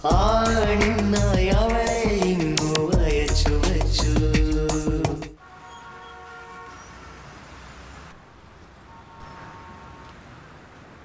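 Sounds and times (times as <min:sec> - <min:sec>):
music: 0:00.0 - 0:05.4
traffic hum: 0:00.0 - 0:11.0
faint vehicle horn: 0:05.4 - 0:07.3, 0:08.8 - 0:10.4.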